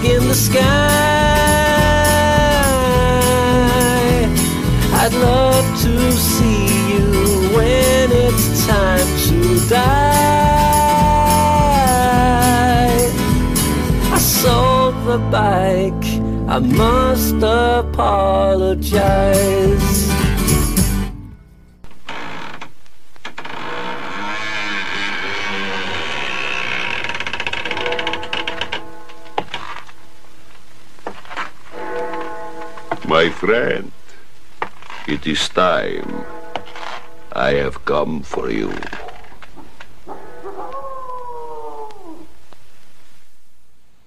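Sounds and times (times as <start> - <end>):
wolf howling: 40.0 - 42.4.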